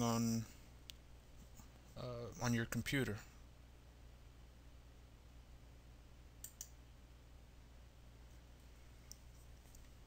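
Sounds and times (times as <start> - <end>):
low steady hum: 0.0 - 10.0
faint sharp clicks: 6.4 - 6.8.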